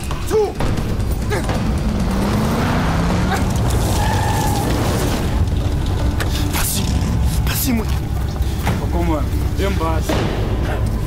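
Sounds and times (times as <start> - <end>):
low rumbling drone: 0.6 - 11.0.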